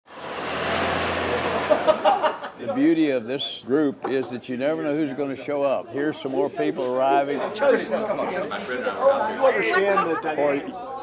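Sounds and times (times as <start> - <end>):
vehicle driving past: 0.1 - 2.2.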